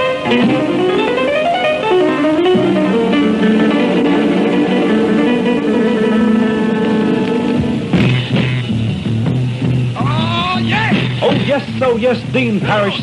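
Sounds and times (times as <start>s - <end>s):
guitar pop music on radio: 0.0s - 13.0s.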